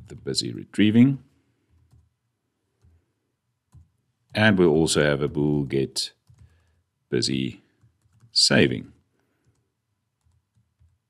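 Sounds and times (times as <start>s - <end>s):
person speaking: 0.0s - 1.3s, 4.3s - 6.2s, 7.1s - 7.6s, 8.3s - 9.0s
soft computer keyboard taps: 3.7s - 3.9s.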